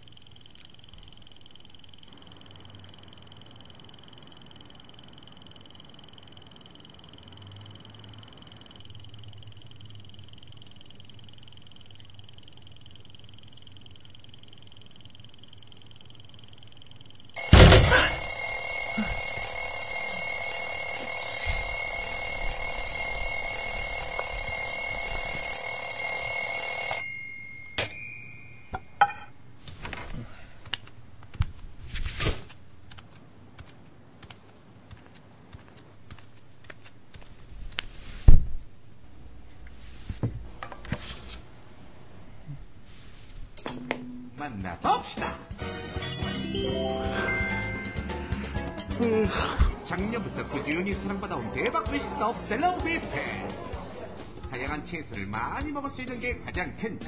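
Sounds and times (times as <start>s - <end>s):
loud alarm bell ringing: 17.4s - 28.7s.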